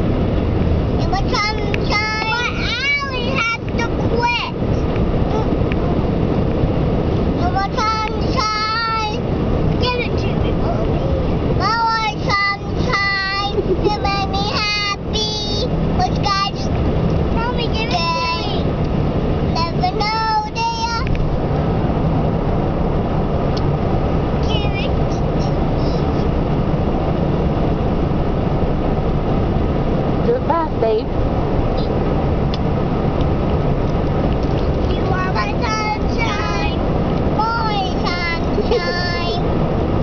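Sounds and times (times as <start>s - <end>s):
car road and engine noise: 0.0s - 40.0s
girl singing: 1.0s - 4.6s, 7.4s - 9.2s, 11.6s - 16.7s, 17.4s - 18.7s, 19.5s - 21.1s, 34.9s - 39.4s.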